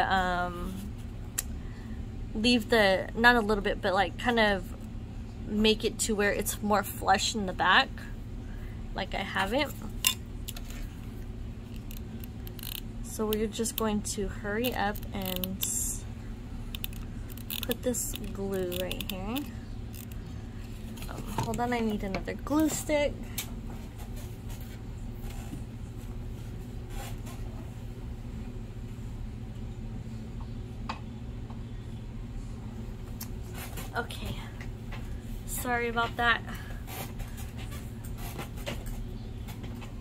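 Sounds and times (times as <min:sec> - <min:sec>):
steady low hum: 0:00.0 - 0:40.0.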